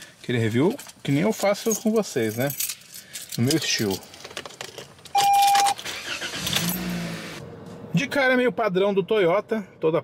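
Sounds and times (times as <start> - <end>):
car engine starting and idling: 5.0 - 9.8
electronic dashboard chime: 5.2 - 5.8.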